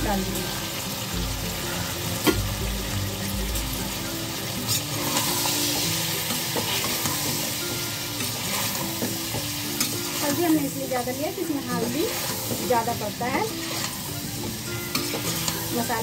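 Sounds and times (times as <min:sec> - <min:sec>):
food frying in oil: 0:00.0 - 0:16.0
metal spoon scraping a pot: 0:04.7 - 0:07.6, 0:13.5 - 0:15.8.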